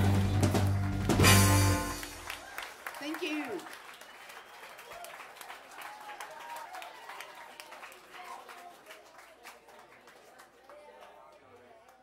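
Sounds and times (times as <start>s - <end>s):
audience applauding: 0.0s - 12.0s.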